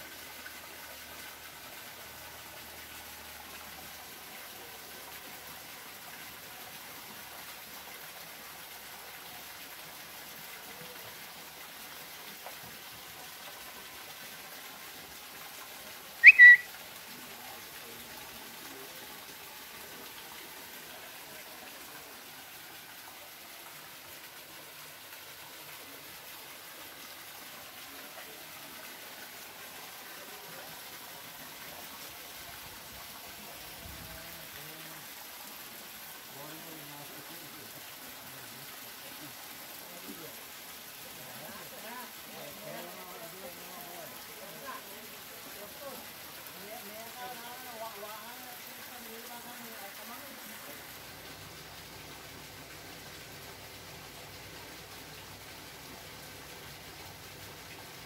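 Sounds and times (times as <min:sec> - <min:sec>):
faint steady water noise: 0:00.0 - 0:58.0
high-pitched whistle: 0:16.2 - 0:16.7.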